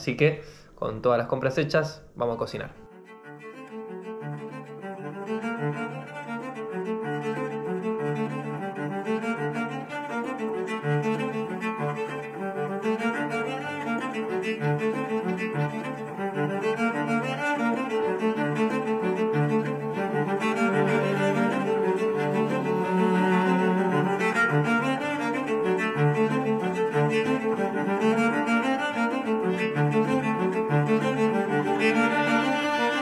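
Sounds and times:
low bowed string music: 0:02.2 - 0:33.0.

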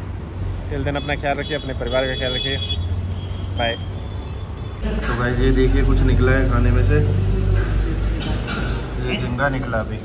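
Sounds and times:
road traffic rumble: 0:00.0 - 0:10.0
man speaking: 0:04.8 - 0:07.4, 0:08.9 - 0:10.0.

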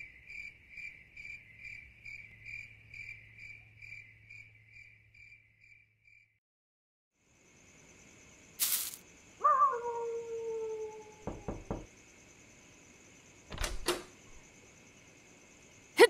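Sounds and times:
crickets chirping: 0:00.0 - 0:06.4, 0:07.2 - 0:16.0
knocking on wooden door: 0:11.2 - 0:11.9.

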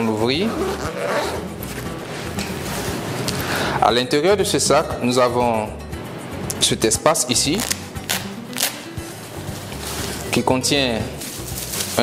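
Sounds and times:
background music: 0:00.0 - 0:12.0
zipper on fabric bag: 0:00.4 - 0:03.0.

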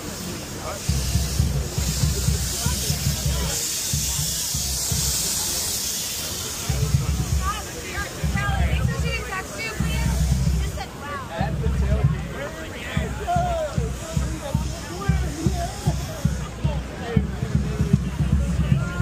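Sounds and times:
crowd chatter: 0:00.0 - 0:19.0.

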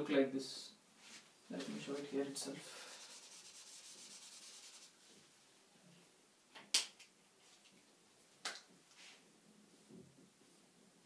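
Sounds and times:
marker scratching on whiteboard: 0:03.1 - 0:05.0.

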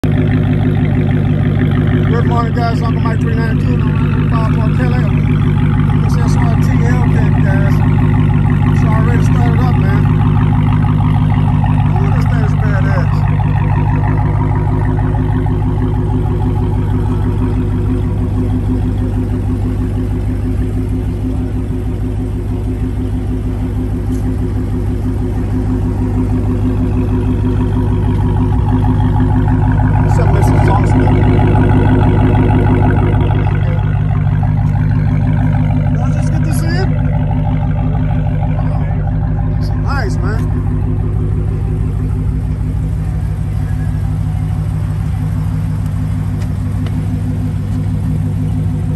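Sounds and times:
car engine idling: 0:00.0 - 0:48.9.

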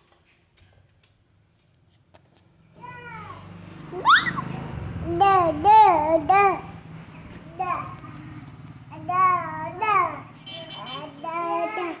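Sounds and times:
toddler vocalizing sing-song: 0:05.0 - 0:06.7, 0:07.5 - 0:08.1, 0:08.9 - 0:10.3, 0:11.0 - 0:12.0.

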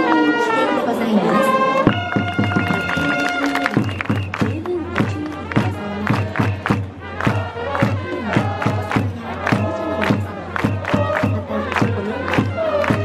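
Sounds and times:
trumpets playing a tune: 0:00.0 - 0:13.0
steady drum beat: 0:01.9 - 0:13.0
crowd chanting: 0:02.9 - 0:13.0.

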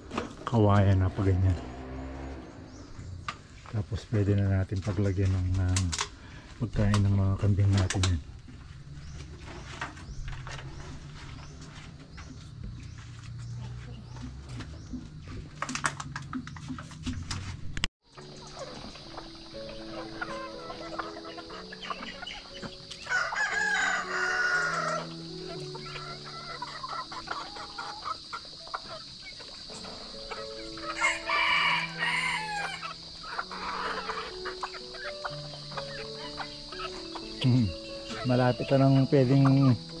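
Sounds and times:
background music: 0:18.0 - 0:40.0
high insect drone: 0:18.1 - 0:40.0
rooster crowing: 0:23.0 - 0:28.3, 0:30.4 - 0:35.7.

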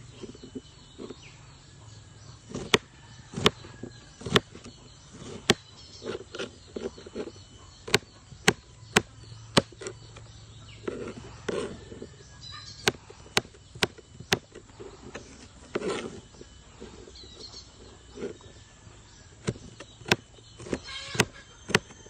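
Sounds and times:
knife chopping cucumber: 0:19.4 - 0:22.0.

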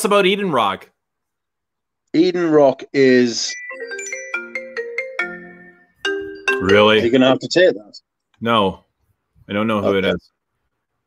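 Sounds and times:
mobile phone ringtone: 0:03.5 - 0:07.4.

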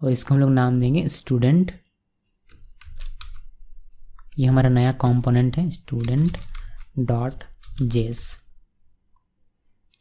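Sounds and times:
computer mouse clicks: 0:02.4 - 0:04.4.

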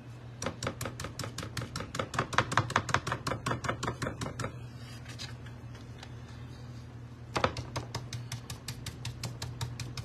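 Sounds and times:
stencil brush tapping on board: 0:07.3 - 0:10.0.

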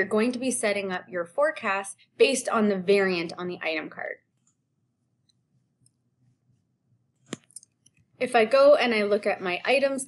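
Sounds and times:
computer mouse clicks: 0:07.2 - 0:08.1.

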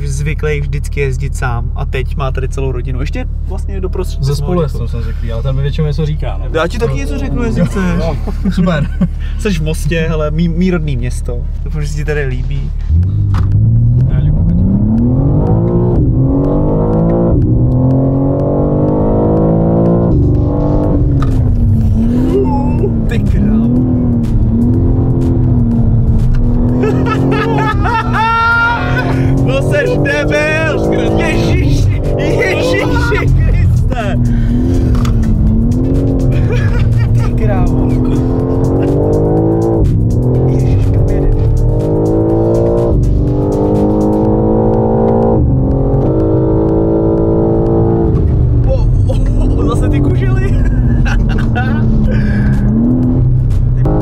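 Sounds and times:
car engine revving: 0:00.0 - 0:54.0
passengers whooping and laughing: 0:26.8 - 0:34.2, 0:36.3 - 0:37.4.

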